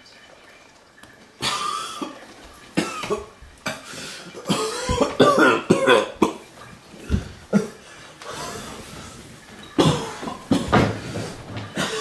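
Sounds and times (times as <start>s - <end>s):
person coughing: 2.8s - 6.5s, 7.1s - 7.8s, 9.8s - 10.9s, 11.7s - 12.0s.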